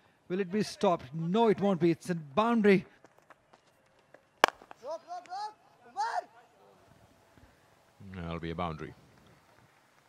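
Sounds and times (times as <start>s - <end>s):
cricket bat striking ball: 4.4s - 4.8s.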